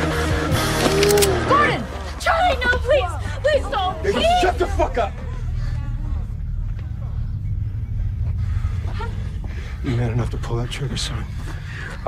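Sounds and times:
steady low rumble: 1.8 - 12.0.

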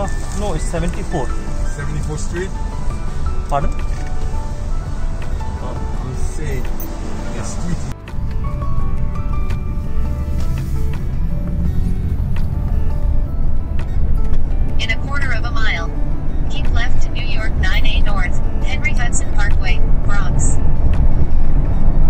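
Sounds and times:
road and engine rumble in car: 0.0 - 22.0.

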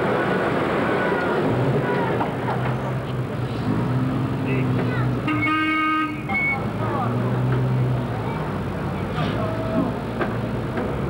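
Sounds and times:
vehicle engines running: 0.0 - 11.0
people's voices: 0.6 - 3.7, 4.4 - 5.5, 6.1 - 11.0
vehicle horn toot: 5.3 - 6.6.

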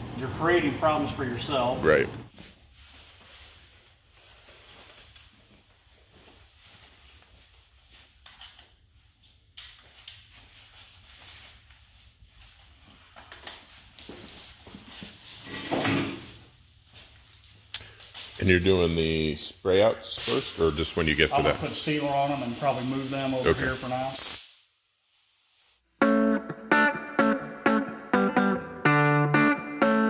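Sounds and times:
protective suit rustling: 2.3 - 15.4.

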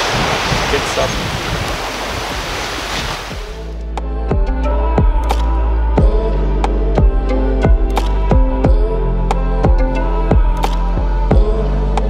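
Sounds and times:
sea surf washing ashore: 0.0 - 3.8
music with deep bass beat: 3.4 - 12.0.

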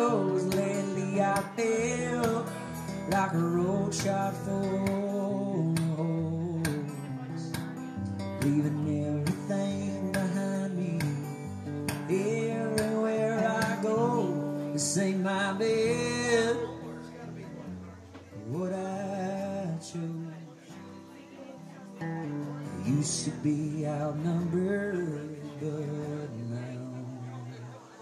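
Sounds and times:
acoustic guitar strumming: 0.0 - 28.0
man singing: 0.0 - 28.0.

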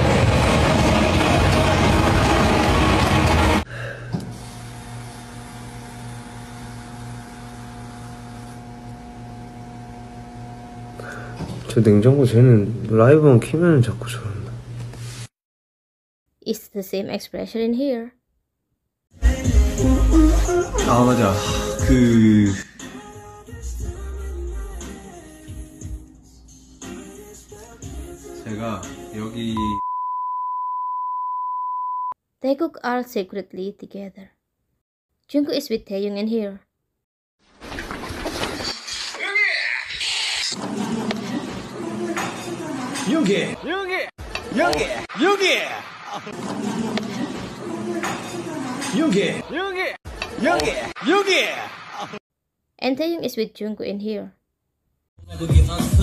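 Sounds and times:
refrigerator humming: 0.0 - 14.8
electronic sine-wave beep: 29.6 - 32.2.

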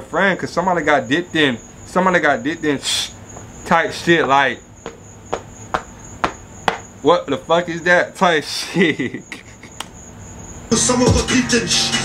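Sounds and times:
finger snaps: 9.8 - 10.0.

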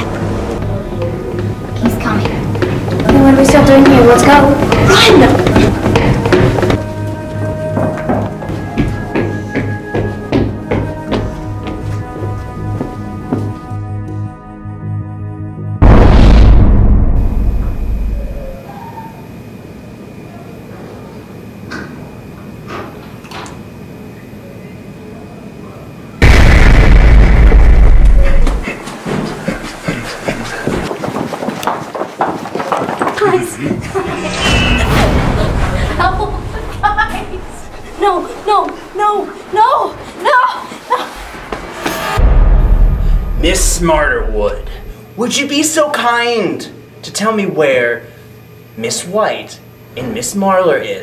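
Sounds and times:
music: 0.0 - 18.2
sharp slam: 15.8 - 18.2
deep boom hit: 15.8 - 18.5, 26.2 - 28.6, 42.0 - 44.9
low rumble: 42.1 - 45.0.

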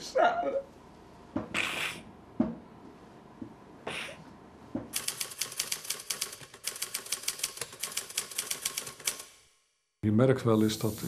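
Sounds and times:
typewriter key clacks: 5.0 - 9.4.

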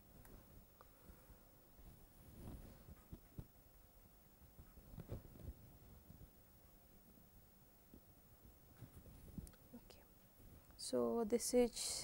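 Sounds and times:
person speaking: 10.8 - 12.0.

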